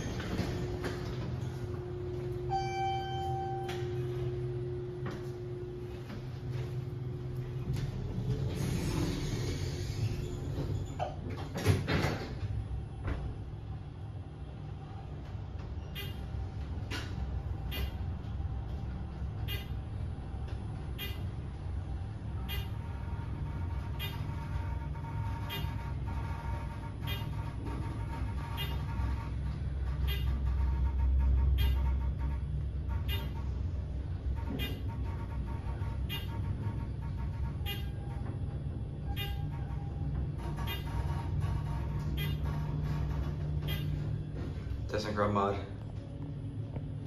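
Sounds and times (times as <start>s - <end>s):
elevator low rumble: 0.0s - 47.0s
faint steady whine: 0.0s - 47.0s
steady hum: 0.0s - 47.0s
elevator chime ding: 2.0s - 5.8s, 39.0s - 40.1s.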